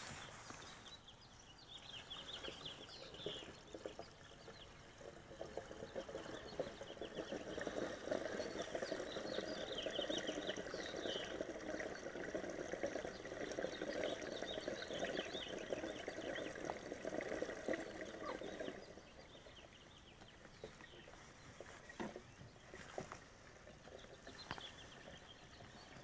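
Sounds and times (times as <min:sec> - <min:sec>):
gasoline pouring from gas can: 0:02.2 - 0:26.0.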